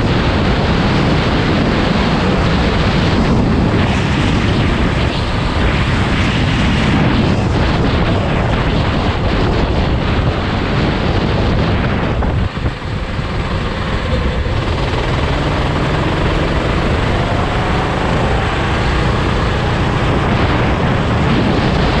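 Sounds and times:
go-kart engine running: 0:00.0 - 0:22.0
wind rush on microphone: 0:00.0 - 0:22.0.

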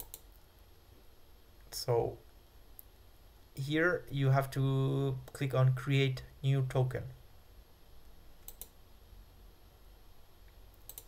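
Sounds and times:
computer mouse clicking: 0:00.0 - 0:00.4, 0:08.4 - 0:08.8, 0:10.7 - 0:11.0
low room hum: 0:00.0 - 0:11.0.

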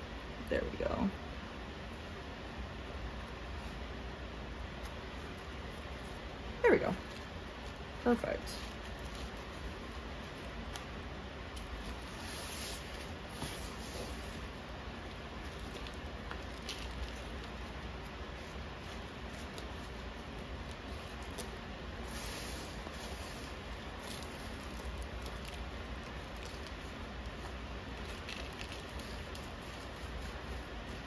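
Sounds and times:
background hiss and hum: 0:00.0 - 0:31.0
soil rustling in plastic pot: 0:07.0 - 0:31.0.

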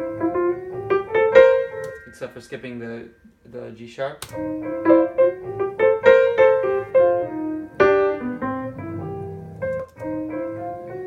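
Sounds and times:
piano notes climbing: 0:00.0 - 0:11.0.

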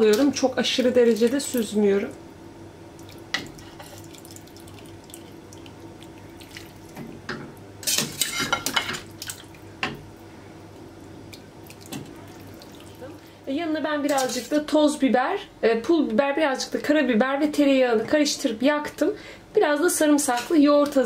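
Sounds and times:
water dripping and splashing: 0:02.9 - 0:07.1, 0:09.0 - 0:09.6, 0:11.3 - 0:13.2.

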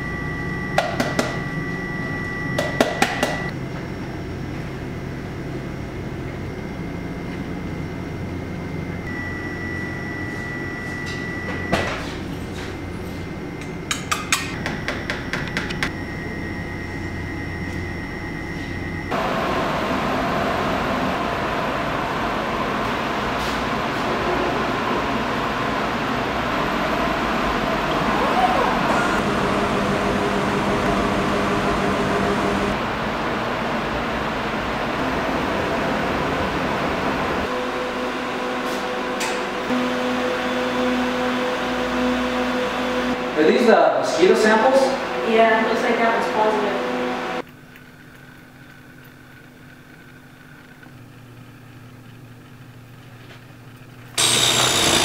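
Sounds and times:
laboratory instrument humming: 0:25.8 - 0:36.2.

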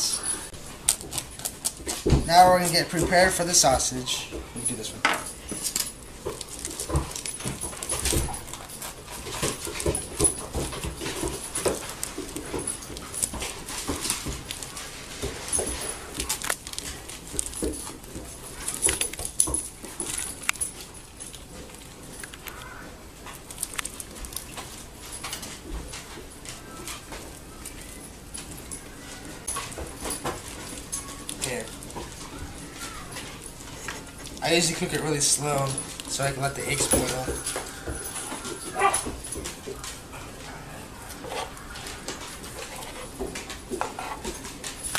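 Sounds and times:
knocks and rustles of plastic wrap: 0:00.7 - 0:40.1
dog whining: 0:26.5 - 0:34.4, 0:36.9 - 0:43.0.

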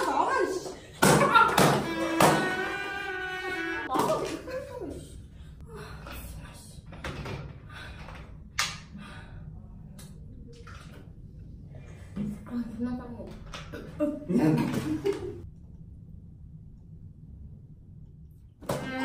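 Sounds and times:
man crying out: 0:01.8 - 0:03.9.

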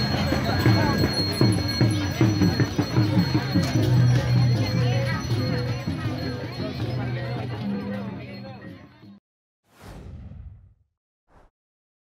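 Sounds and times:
whoosh sound effect: 0:09.7 - 0:11.5.

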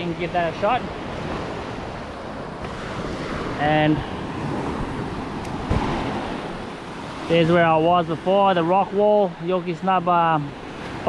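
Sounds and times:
small waves washing up a beach: 0:00.0 - 0:11.0
wind on microphone: 0:00.0 - 0:11.0
short low thump: 0:05.5 - 0:06.6.

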